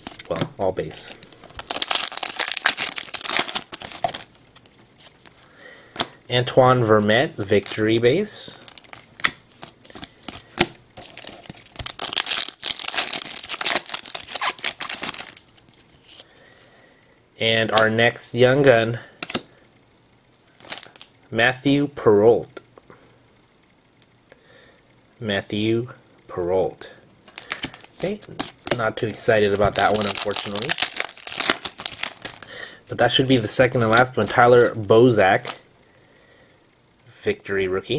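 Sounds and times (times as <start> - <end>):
cards shuffling: 0.0 - 5.4, 8.8 - 16.2, 27.3 - 28.8, 29.5 - 32.5
foil wrapper tearing and crinkling: 1.5 - 4.3, 8.7 - 15.5, 20.6 - 21.1, 29.5 - 32.5.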